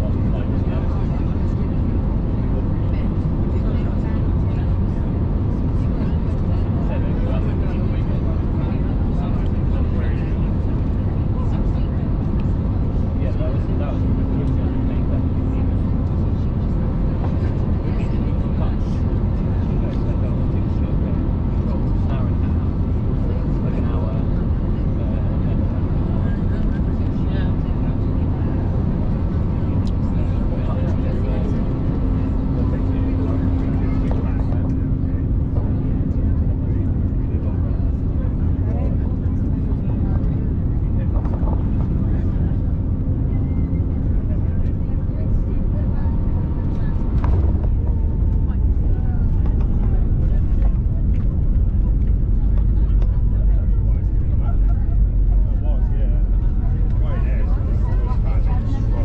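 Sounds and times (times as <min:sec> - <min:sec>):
airliner cabin engine rumble: 0:00.0 - 0:59.0
held hum: 0:00.0 - 0:59.0.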